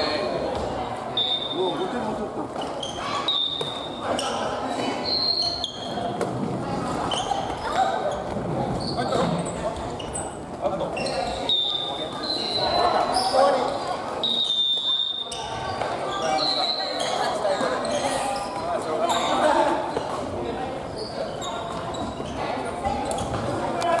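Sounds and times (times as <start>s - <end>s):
many voices chattering: 0.0s - 24.0s
sneakers squeaking on wooden floor: 2.5s - 24.0s.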